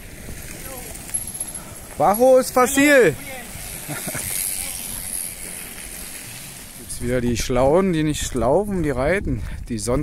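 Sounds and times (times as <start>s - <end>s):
bike tyres on gravel: 0.0s - 10.0s.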